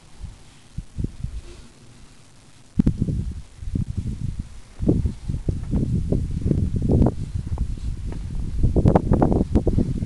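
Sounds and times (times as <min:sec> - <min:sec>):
soft low thumps: 0:02.8 - 0:10.0.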